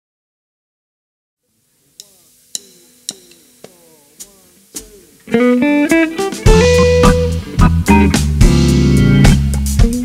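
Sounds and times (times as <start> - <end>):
faint amplifier hum: 1.4 - 10.0
hi-hat taps: 2.0 - 5.3.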